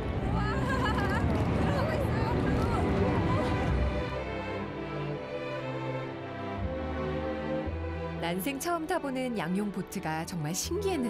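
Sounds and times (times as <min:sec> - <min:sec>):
passengers exclaiming: 0:00.2 - 0:03.9.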